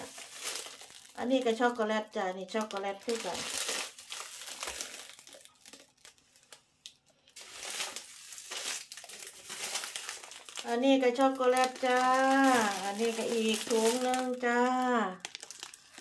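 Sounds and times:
plastic bags crinkling: 0.0 - 16.0.

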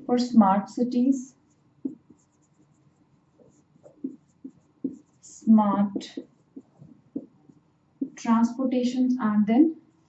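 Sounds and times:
marker writing on a whiteboard: 0.0 - 8.6.

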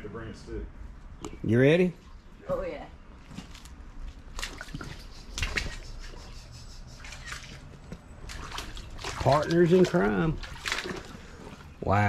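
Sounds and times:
footsteps wading through water: 3.3 - 12.0.

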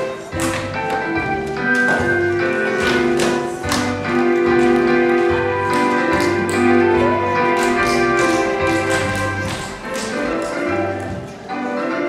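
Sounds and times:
tap shoes on stage floor: 0.0 - 11.5
backing music: 0.0 - 12.0.

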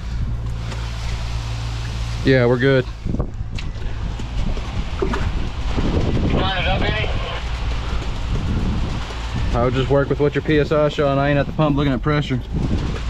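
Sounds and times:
truck engine low rumble: 0.0 - 13.0
wind noise on microphone: 0.0 - 13.0.

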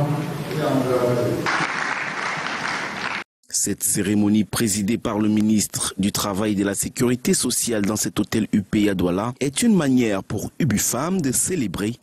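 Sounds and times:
audience applauding: 1.4 - 3.3.

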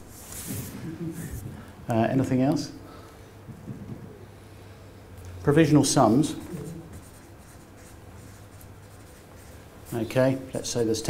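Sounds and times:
marker pen writing on paper: 6.4 - 9.6.

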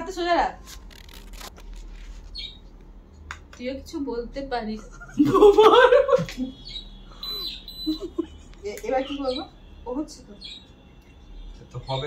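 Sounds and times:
people talking: 0.0 - 0.6, 8.6 - 10.4, 11.7 - 12.0
faint steady high tone: 7.1 - 8.1.

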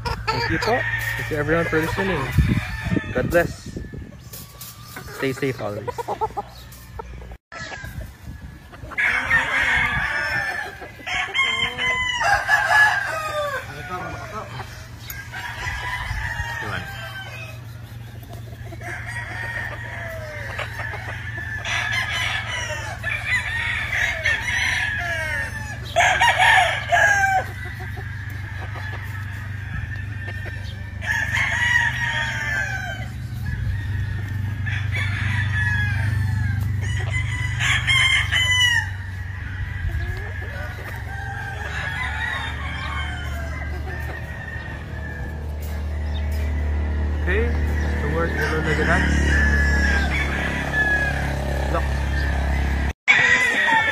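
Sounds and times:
chickens clucking: 0.0 - 53.9
roosters crowing: 0.0 - 53.9.

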